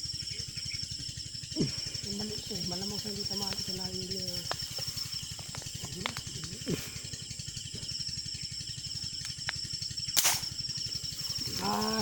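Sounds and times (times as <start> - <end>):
insects chirping: 0.0 - 12.0
air rifle shot: 10.2 - 10.6.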